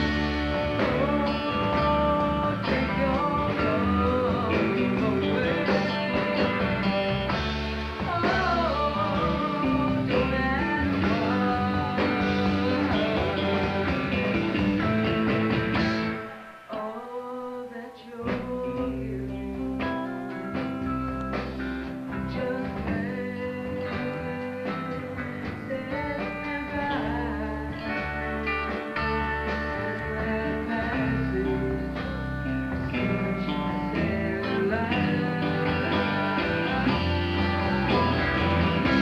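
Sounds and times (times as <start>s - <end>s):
electric guitar lead with bent notes: 0.0s - 39.0s
rock band backing: 0.0s - 39.0s.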